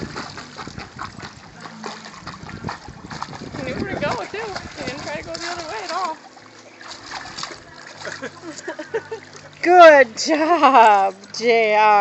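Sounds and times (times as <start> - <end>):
water splashing and sloshing: 0.0 - 12.0.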